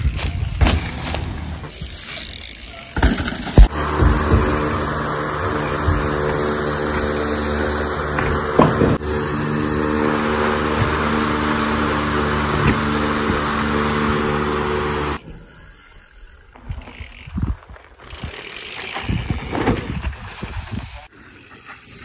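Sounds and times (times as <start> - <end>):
motor droning hum: 2.3 - 17.2.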